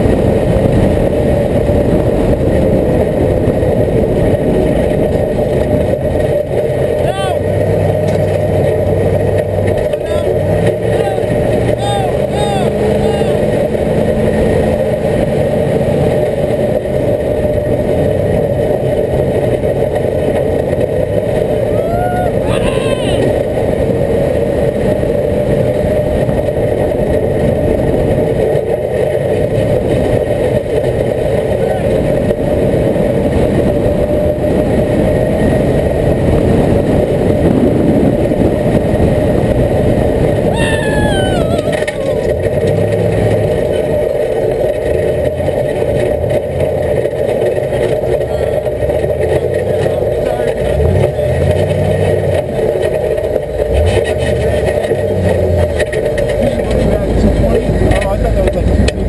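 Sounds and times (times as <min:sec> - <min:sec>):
off-road vehicle engine running: 0:00.0 - 0:59.0.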